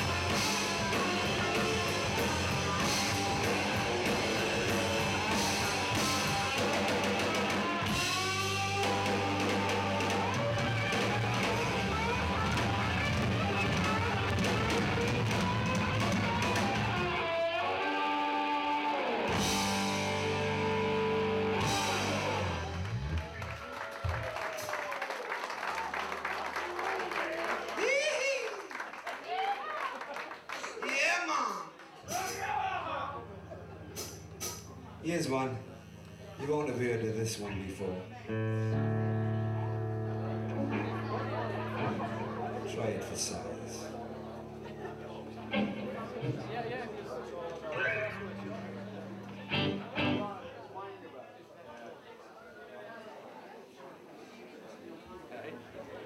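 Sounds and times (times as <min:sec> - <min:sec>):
live rock band playing: 0:00.0 - 0:23.3, 0:32.0 - 0:36.2, 0:38.2 - 0:50.5.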